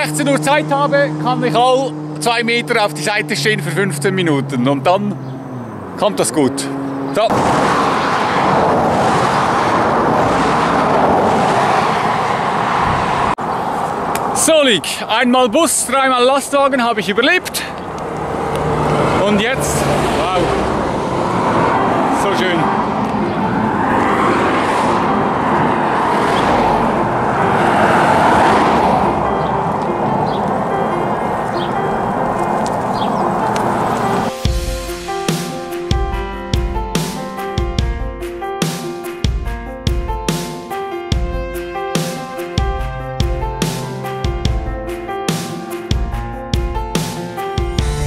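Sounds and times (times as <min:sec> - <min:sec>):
road traffic passing at speed: 0:00.0 - 0:48.0.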